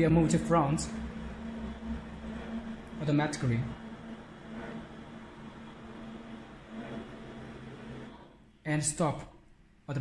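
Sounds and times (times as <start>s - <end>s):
printer humming and whirring: 0.0s - 8.6s.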